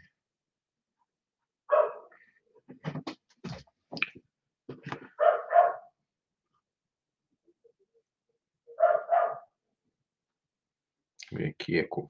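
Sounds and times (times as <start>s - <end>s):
dog barking: 1.7s - 2.1s, 5.2s - 6.0s, 8.8s - 9.6s.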